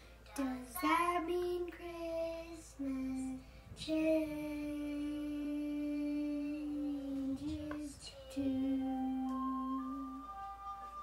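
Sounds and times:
girl singing: 0.3 - 10.3.

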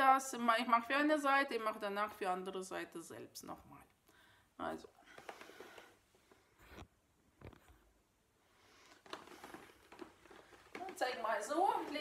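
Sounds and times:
clothing rustling on floor mat: 8.7 - 12.0.

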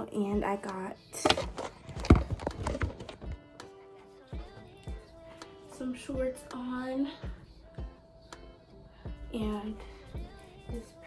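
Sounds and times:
phone handling knocks and rubbing: 1.3 - 3.4.

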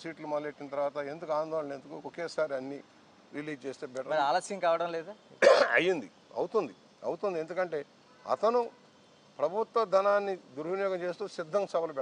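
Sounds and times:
man talking: 0.0 - 8.8, 9.4 - 12.0
man coughing: 5.4 - 5.9.

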